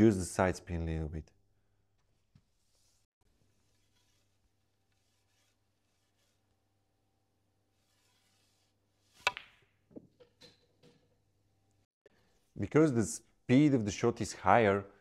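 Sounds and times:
snooker balls clicking: 0:09.3 - 0:09.6.

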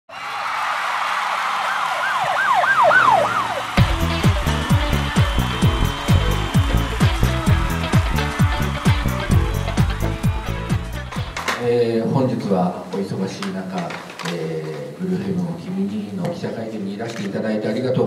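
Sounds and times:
kick drum and hi-hat beat: 0:03.8 - 0:11.4.

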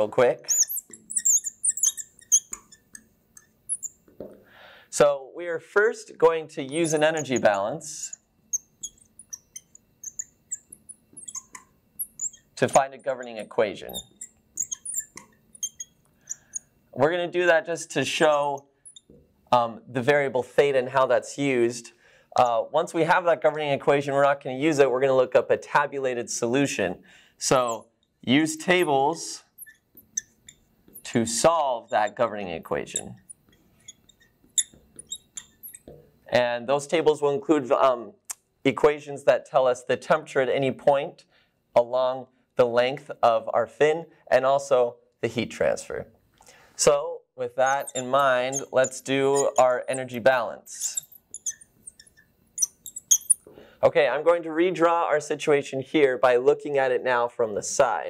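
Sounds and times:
marker squeaking on glass: 0:00.0 - 0:04.1, 0:06.6 - 0:16.8, 0:18.1 - 0:19.2, 0:27.5 - 0:31.2, 0:31.8 - 0:36.2, 0:47.5 - 0:53.5.

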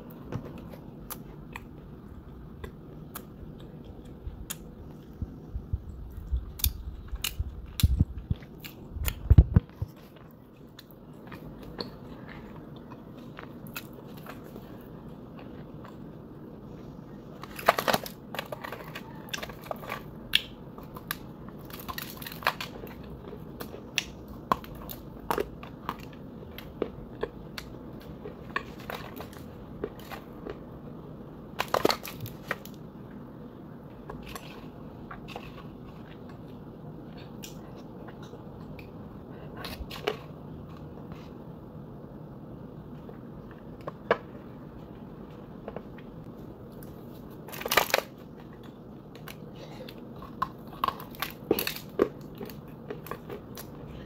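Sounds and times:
crunchy chewing of clay: 0:00.0 - 0:33.2, 0:33.8 - 0:41.6, 0:42.8 - 0:54.0
low hum: 0:00.0 - 0:54.0.

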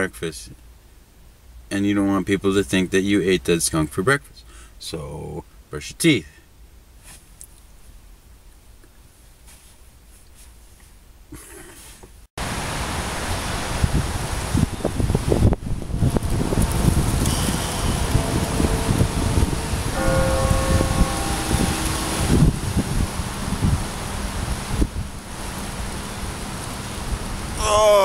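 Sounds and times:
wind buffeting microphone: 0:13.2 - 0:27.6
held pitched tone: 0:17.2 - 0:23.4.

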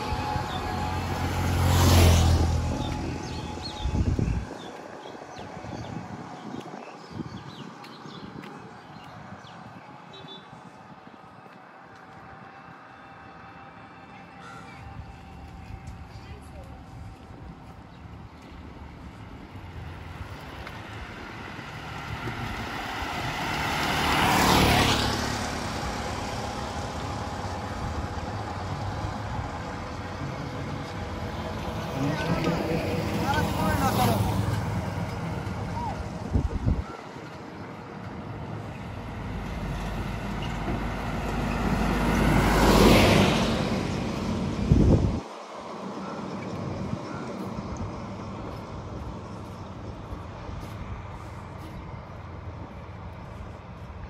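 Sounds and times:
auto-rickshaw passing: 0:00.0 - 0:06.4, 0:10.8 - 0:54.0
truck passing: 0:00.0 - 0:54.0
vehicles passing by: 0:00.0 - 0:54.0.

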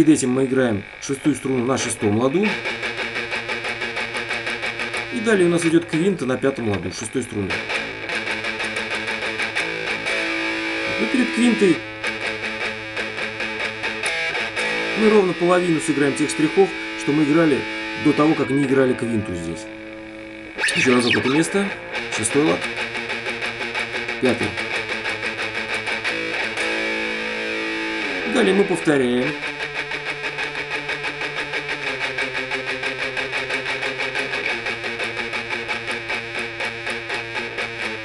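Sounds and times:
palm-muted electric guitar: 0:00.0 - 0:38.0
ringing power chord: 0:07.6 - 0:36.0.

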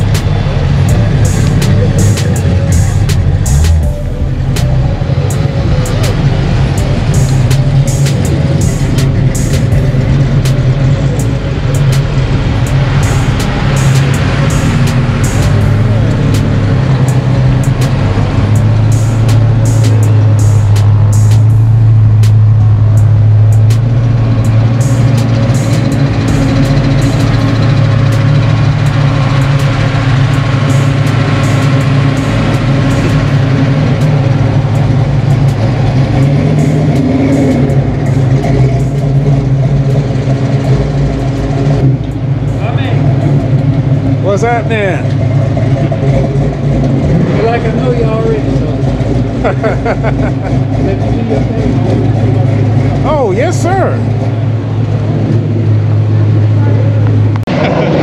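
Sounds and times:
car engine idling: 0:00.0 - 0:58.0.

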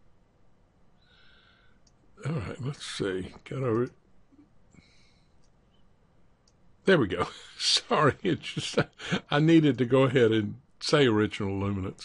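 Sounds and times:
man speaking: 0:02.2 - 0:04.0, 0:06.8 - 0:12.0.

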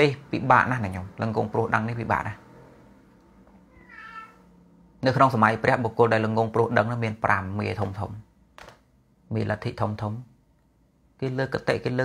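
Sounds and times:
high-pitched animal cry: 0:03.7 - 0:04.5.

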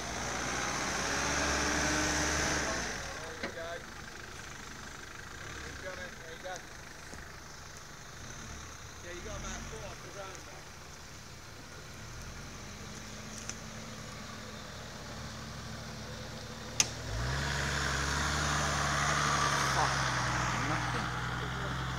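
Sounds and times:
off-road vehicle engine: 0:00.0 - 0:21.9
sharp click: 0:16.8 - 0:17.0.

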